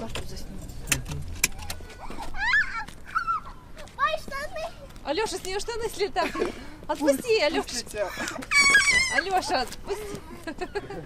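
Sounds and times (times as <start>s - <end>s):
child squealing: 1.8s - 3.9s, 8.0s - 9.7s.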